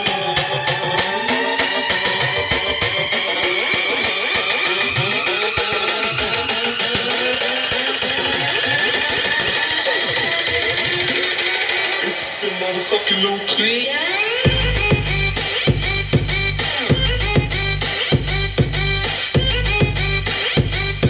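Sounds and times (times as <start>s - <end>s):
loud dj music with pitch sweeps: 0.0s - 21.0s.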